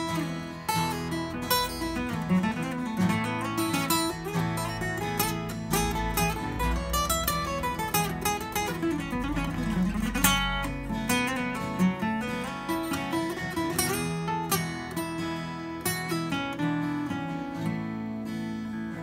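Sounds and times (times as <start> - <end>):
fingerstyle acoustic guitar: 0.0 - 19.0.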